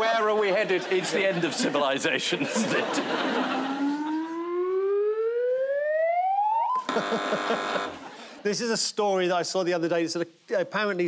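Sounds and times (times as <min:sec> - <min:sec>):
siren-like rising wail: 0:03.1 - 0:07.1.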